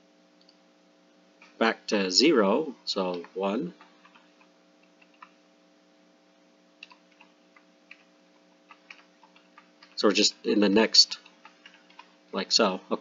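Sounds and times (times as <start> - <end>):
faint steady hum: 0.0 - 13.0
keyboard keys clicking: 4.9 - 5.3, 6.8 - 7.3, 7.9 - 8.1, 8.7 - 10.0.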